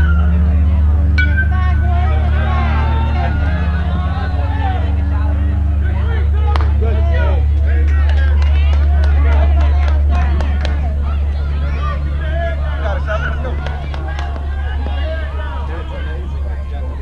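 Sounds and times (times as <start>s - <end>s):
loud low rumble: 0.0s - 17.0s
spectators chattering: 0.0s - 17.0s.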